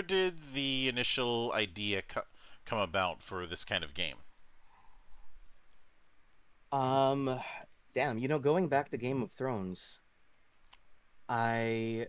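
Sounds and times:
person speaking: 0:00.0 - 0:04.5, 0:06.6 - 0:12.0
faint background hiss: 0:00.0 - 0:12.0
faint clicks: 0:05.6 - 0:06.6, 0:10.2 - 0:10.9.

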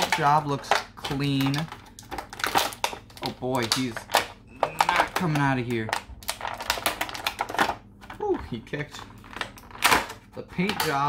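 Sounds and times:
plastic blister tray crackling: 0:00.0 - 0:11.0.

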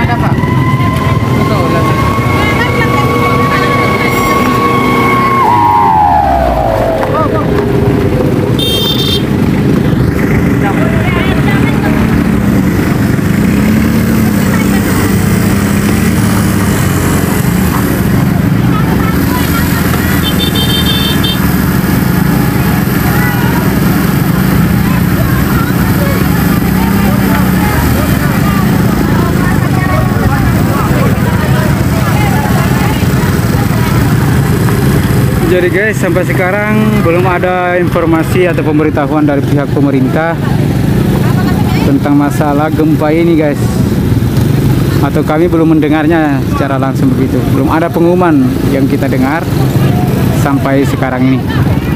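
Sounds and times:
motorcycle engines revving: 0:00.0 - 0:51.9
horn-like tone falling in pitch: 0:00.1 - 0:07.5.

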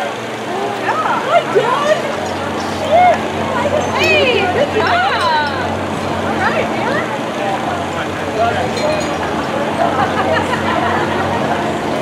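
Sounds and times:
spectators calling out and talking: 0:00.0 - 0:12.0
steady low hum: 0:00.0 - 0:12.0.

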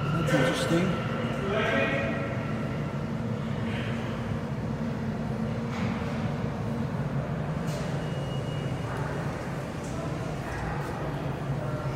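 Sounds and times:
subway station rumble: 0:00.0 - 0:11.9.

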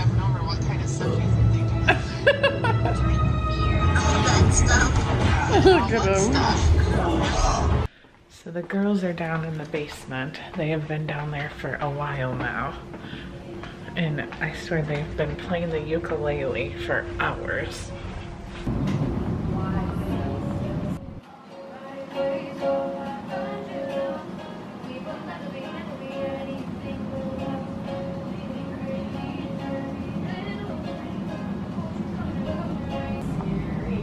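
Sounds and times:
low rumble: 0:18.0 - 0:21.2
ukulele strumming: 0:18.7 - 0:34.0
girls singing: 0:19.4 - 0:34.0.

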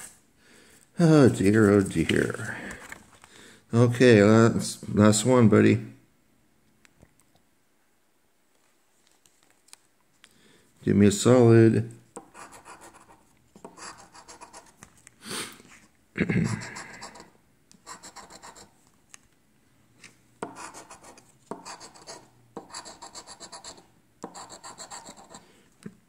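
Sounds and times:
coin scratching lottery ticket: 0:17.1 - 0:18.7, 0:20.5 - 0:25.4.

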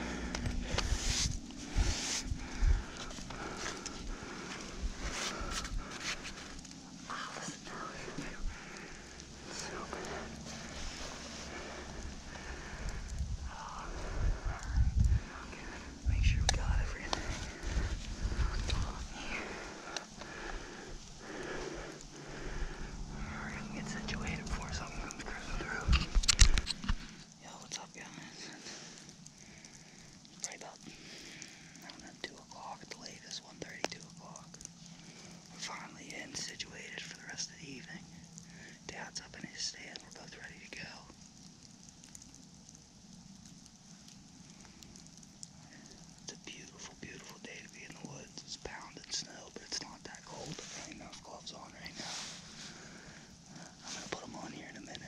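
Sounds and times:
soft whispering: 0:00.0 - 0:55.0
handling noise on microphone: 0:00.4 - 0:02.4
small clicks: 0:25.9 - 0:27.4.

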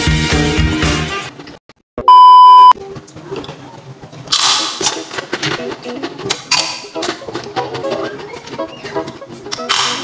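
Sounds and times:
steady test-tone beep: 0:02.0 - 0:02.8.

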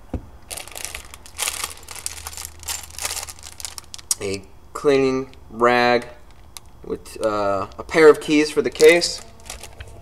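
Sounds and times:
plastic packaging crinkling: 0:00.5 - 0:04.4, 0:06.2 - 0:10.0.

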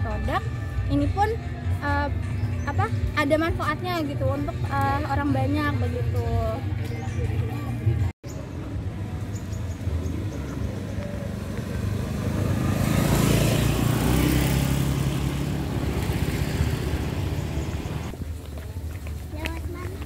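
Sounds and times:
motor scooter passing: 0:08.7 - 0:18.2.

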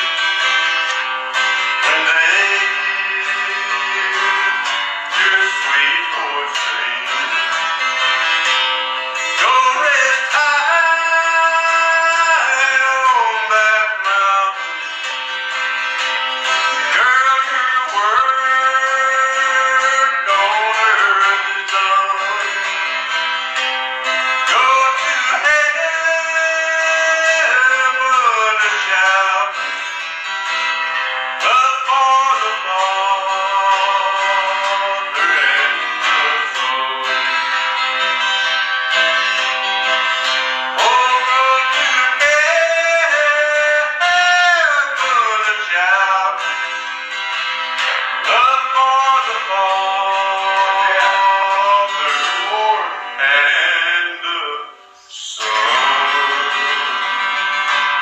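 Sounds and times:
man singing: 0:00.0 - 0:08.3, 0:09.1 - 0:30.4, 0:31.0 - 0:47.2, 0:47.8 - 0:57.6
acoustic guitar strumming: 0:00.0 - 0:58.0.

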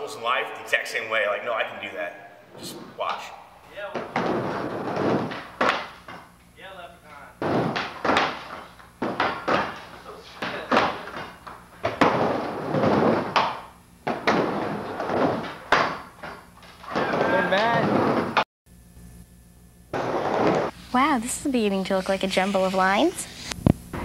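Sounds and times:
skateboard wheels rolling on plywood: 0:03.8 - 0:06.1, 0:07.4 - 0:18.4, 0:20.0 - 0:20.8
skateboard clacks and slams: 0:07.4 - 0:16.2.

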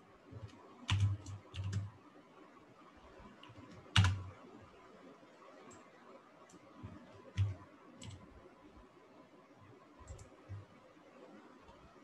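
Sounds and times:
computer keyboard keystrokes: 0:00.4 - 0:01.9, 0:03.4 - 0:04.3, 0:06.9 - 0:08.2, 0:10.0 - 0:10.6.

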